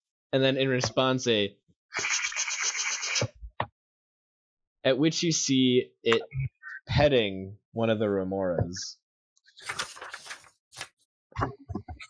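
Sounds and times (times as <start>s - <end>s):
person making raspy fluttering hiss: 2.0s - 3.2s.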